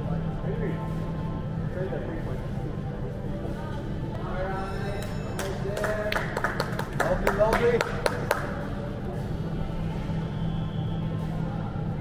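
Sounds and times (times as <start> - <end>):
hand claps: 5.0 - 8.7.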